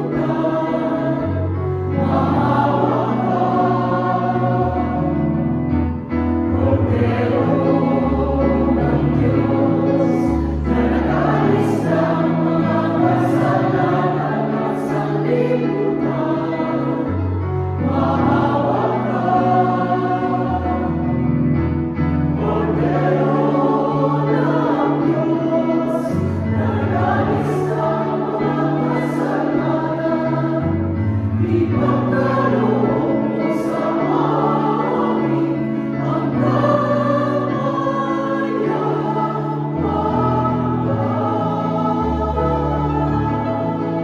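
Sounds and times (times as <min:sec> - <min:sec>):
mixed choir singing a hymn: 0:00.0 - 0:44.0.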